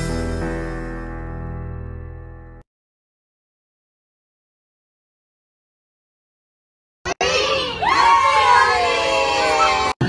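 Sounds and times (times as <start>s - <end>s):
children shouting and cheering: 7.1s - 10.0s.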